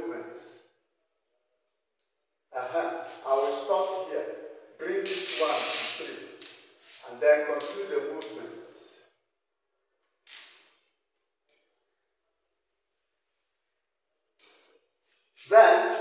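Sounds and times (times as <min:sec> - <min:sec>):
man making wordless vocal sounds: 0:15.4 - 0:16.0.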